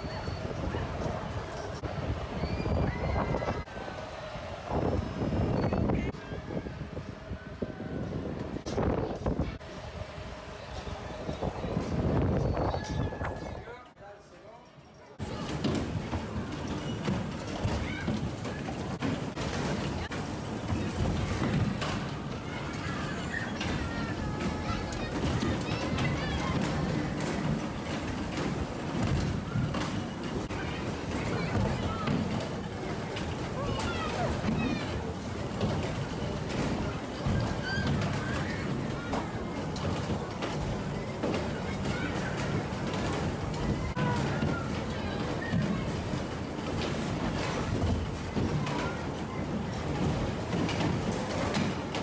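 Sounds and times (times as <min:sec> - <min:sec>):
wind buffeting microphone: 0:00.0 - 0:13.7
bumper car motor rumble: 0:15.2 - 0:52.0.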